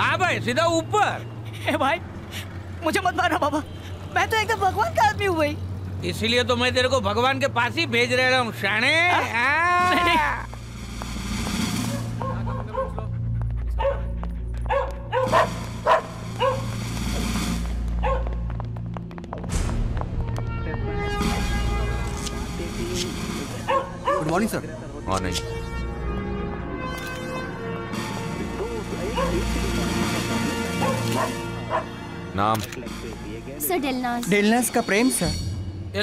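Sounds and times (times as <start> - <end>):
low music drone: 9.8 - 36.0
dog barking: 12.2 - 13.2, 13.8 - 16.7, 18.0 - 18.4, 23.7 - 24.4, 29.0 - 29.5, 30.8 - 32.0.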